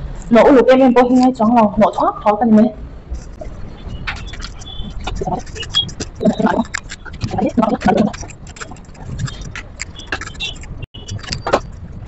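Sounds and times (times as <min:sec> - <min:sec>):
knocks and clicks: 0:03.1 - 0:12.0.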